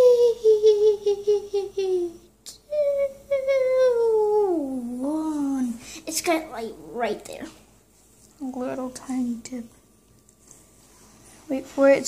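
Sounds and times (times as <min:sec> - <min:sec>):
high-pitched voice humming: 0:00.0 - 0:05.4.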